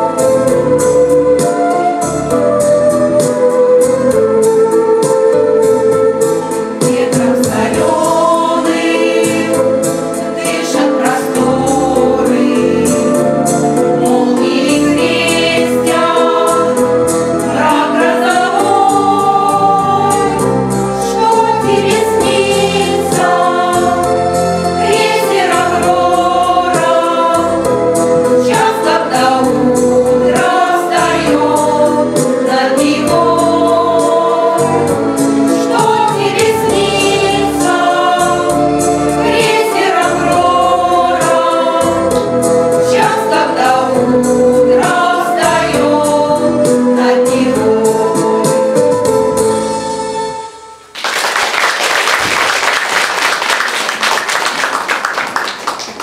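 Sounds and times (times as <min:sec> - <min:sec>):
women singing together: 0:06.8 - 0:13.3, 0:13.9 - 0:48.8.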